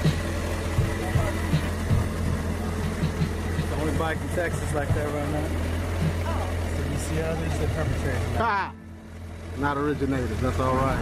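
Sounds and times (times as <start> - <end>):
background music: 0.0 - 11.0
motorcycle engine idling: 0.0 - 11.0
faint voices: 0.4 - 11.0.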